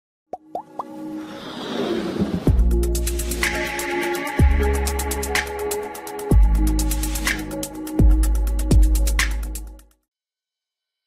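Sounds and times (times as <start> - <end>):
music building up: 0.6 - 9.8.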